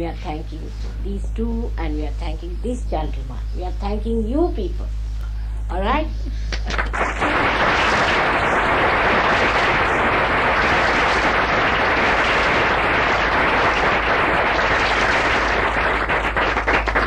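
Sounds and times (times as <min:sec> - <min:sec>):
audience applauding: 0:06.5 - 0:17.0.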